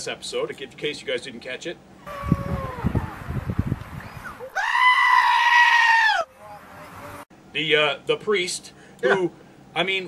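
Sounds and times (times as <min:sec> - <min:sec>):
sheep screaming: 0:02.0 - 0:02.9, 0:04.5 - 0:06.3.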